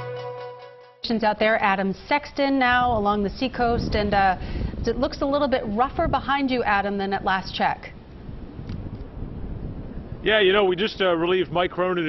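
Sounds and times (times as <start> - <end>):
wind blowing across microphone: 1.2 - 12.0.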